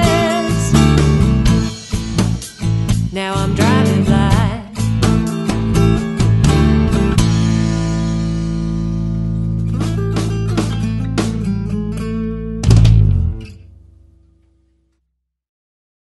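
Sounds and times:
electric guitar chords: 0.0s - 14.6s
blues-rock band final chord: 12.5s - 14.2s.

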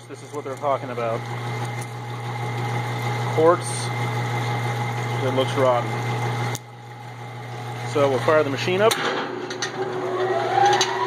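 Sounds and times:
electrical machine hum: 0.0s - 11.0s.

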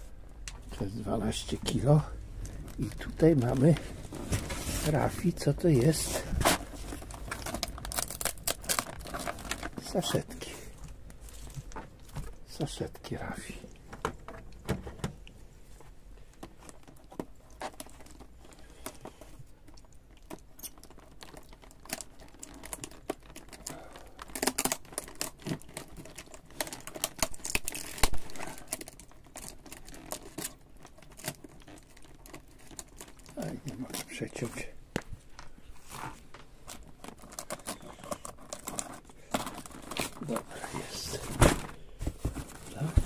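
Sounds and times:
plastic packs crinkling: 0.5s - 14.6s, 16.2s - 43.0s.

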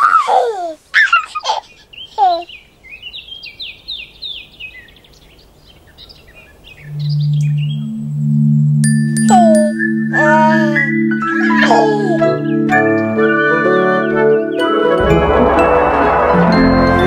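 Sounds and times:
low steady tone: 6.9s - 12.2s.

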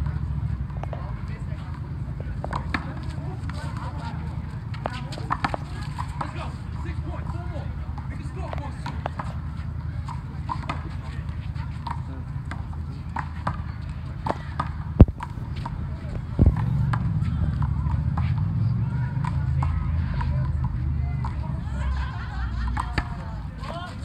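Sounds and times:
players talking indistinctly: 0.0s - 24.0s
handball smacks: 0.8s - 1.1s, 4.8s - 6.4s
steady low rumble: 14.9s - 18.8s.

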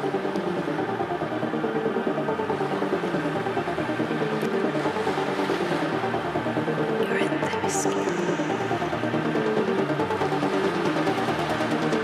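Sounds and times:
psytrance music: 0.0s - 12.0s.

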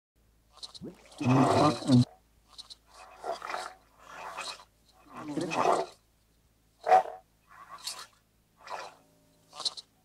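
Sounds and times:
processed vocal fragments: 0.8s - 2.2s, 5.0s - 6.0s.

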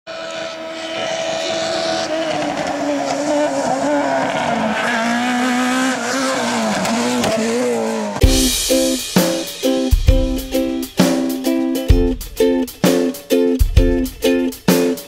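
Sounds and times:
car engine revving hard: 0.1s - 8.2s.

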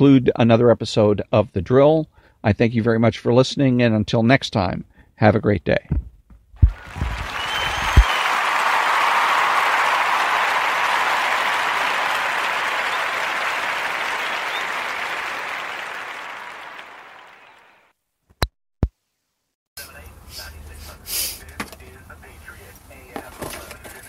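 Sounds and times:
crowd applause: 6.6s - 17.9s.

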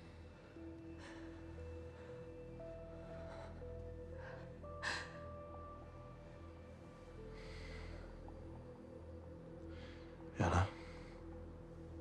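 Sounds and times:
film score with held notes: 0.0s - 12.0s
low drone: 0.0s - 12.0s.

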